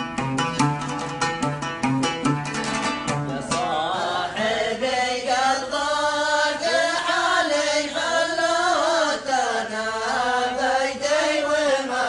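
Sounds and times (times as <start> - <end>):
men chanting: 3.2 - 12.0.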